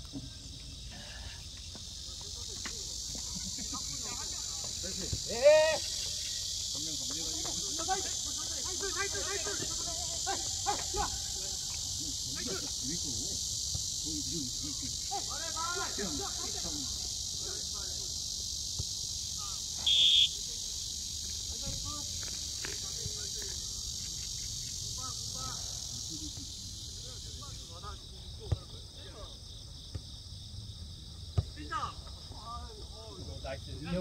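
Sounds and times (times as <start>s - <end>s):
insects droning in trees: 0.0s - 34.0s
distant shouts: 3.6s - 13.1s, 14.4s - 18.2s, 19.3s - 20.7s
whistle blast: 19.8s - 20.4s.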